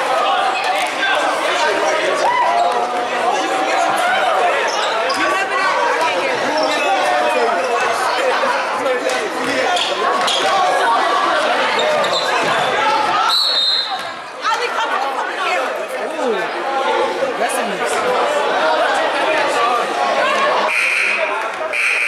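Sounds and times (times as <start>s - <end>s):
overlapping voices in a gym: 0.0s - 22.0s
referee's whistle blast: 13.3s - 14.0s, 20.7s - 22.0s.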